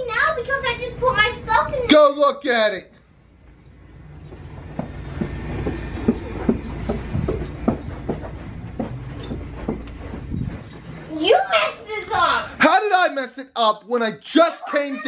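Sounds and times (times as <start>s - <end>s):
footsteps: 3.0s - 13.0s
handheld camera rumble: 3.2s - 12.5s.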